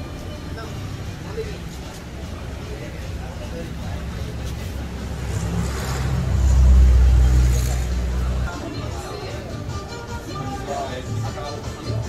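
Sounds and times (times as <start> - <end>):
vehicle passing with tyre rumble: 0.0 - 9.1.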